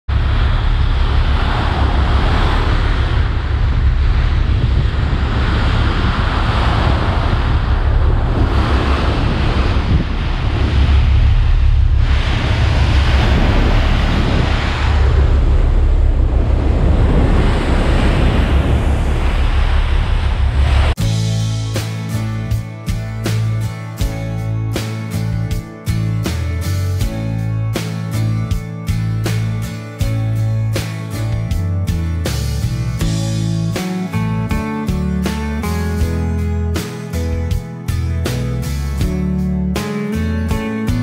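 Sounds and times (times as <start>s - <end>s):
sea water rushing along hull: 0.1s - 21.0s
wind buffeting microphone: 0.1s - 21.0s.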